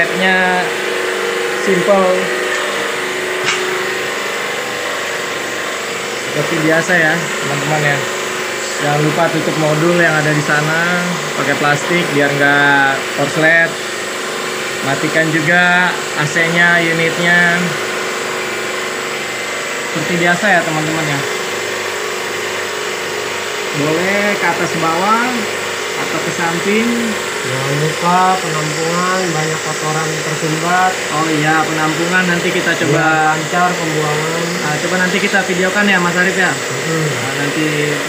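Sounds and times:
pressure washer hissing: 0.0s - 38.0s.

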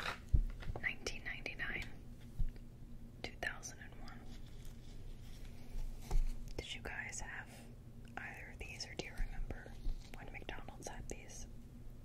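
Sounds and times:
woman whispering: 0.8s - 2.0s, 3.2s - 4.4s, 6.6s - 11.5s.

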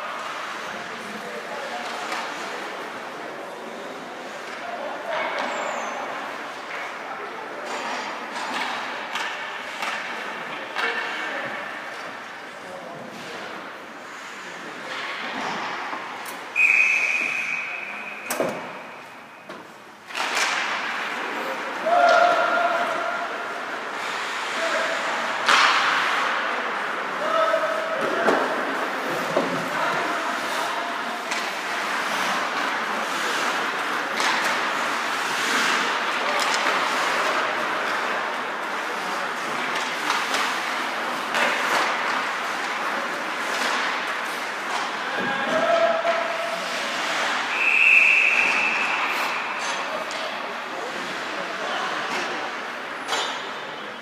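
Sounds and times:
referee's whistle: 16.6s - 18.3s, 47.5s - 49.4s.

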